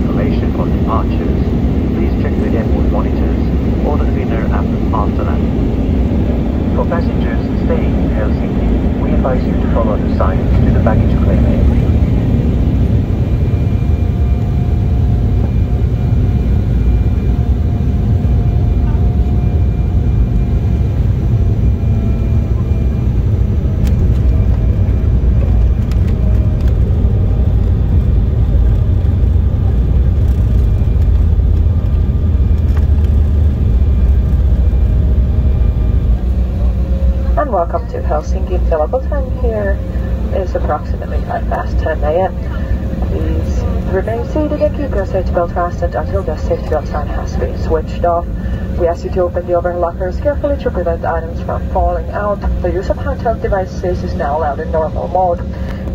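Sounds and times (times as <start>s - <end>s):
airliner cabin engine rumble: 0.0s - 55.9s.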